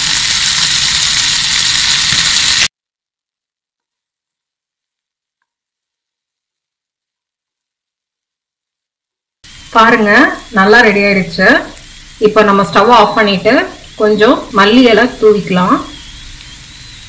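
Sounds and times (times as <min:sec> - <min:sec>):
potatoes sizzling in hot oil: 0:00.0 - 0:02.7, 0:09.5 - 0:17.0.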